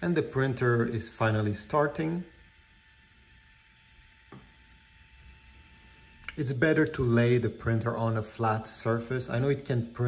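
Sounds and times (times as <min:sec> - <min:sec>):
photo printer whine: 0:00.0 - 0:10.0.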